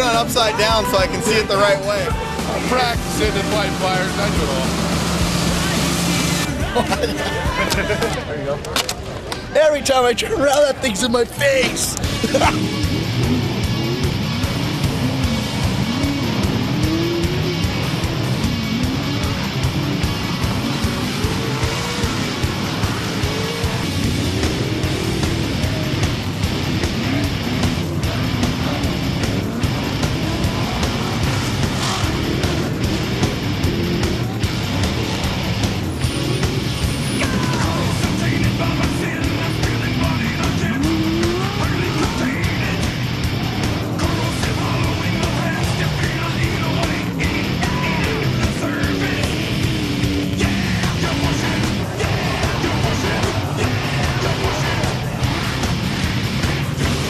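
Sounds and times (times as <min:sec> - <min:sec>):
rock music: 0:00.0 - 0:57.0
truck engines revving: 0:00.0 - 0:57.0.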